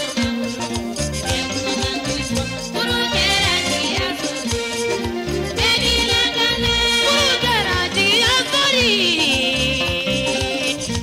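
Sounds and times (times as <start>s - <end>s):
song with ornamented melody: 0.0s - 11.0s
bass and drum beat: 0.2s - 11.0s.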